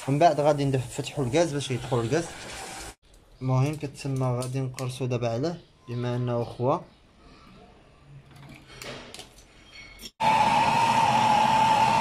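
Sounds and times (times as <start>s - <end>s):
gas torch hissing: 0.0s - 3.0s.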